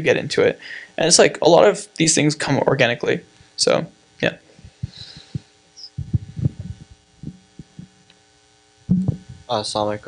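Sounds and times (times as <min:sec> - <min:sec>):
low sound system hum: 0:00.0 - 0:10.0
microphone handling thumps: 0:04.5 - 0:08.1, 0:08.8 - 0:09.5.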